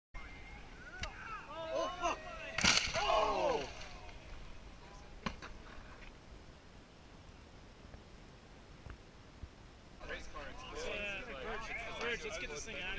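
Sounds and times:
outdoor background: 0.2 - 12.9
bike crashing into dirt: 2.5 - 4.2.

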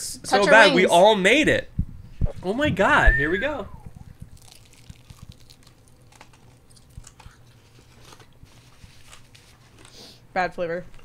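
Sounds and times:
chewing and biting: 4.0 - 10.0.

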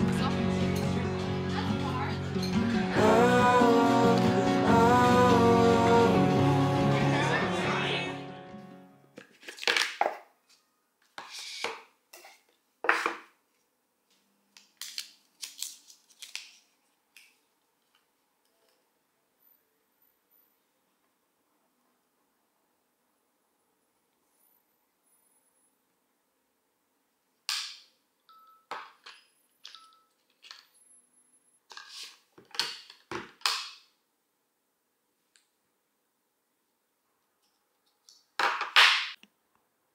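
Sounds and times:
plastic and card clacks: 14.5 - 18.0
paper wrapping crinkling: 14.6 - 18.0
packaging rustle: 14.8 - 17.4.

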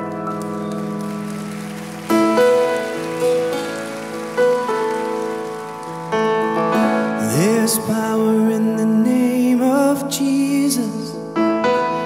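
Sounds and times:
piano playing slow chords: 0.0 - 12.0.

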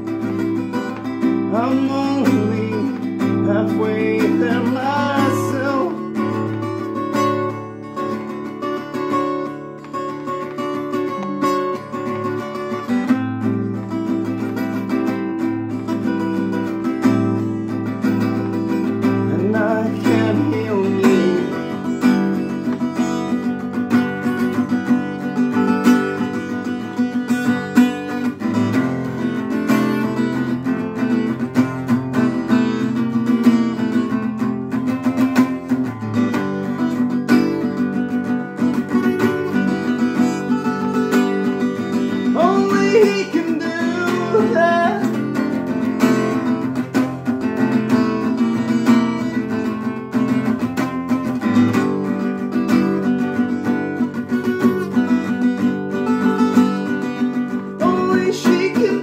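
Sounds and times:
acoustic guitar strumming chords: 0.0 - 59.0
man singing: 1.2 - 6.7, 19.0 - 22.8, 39.6 - 45.9, 57.8 - 59.0.

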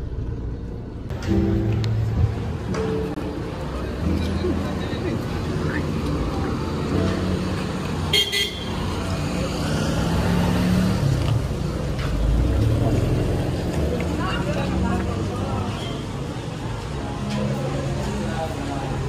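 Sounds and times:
street traffic engines: 0.0 - 19.0
vehicle horn toot: 8.1 - 8.8.

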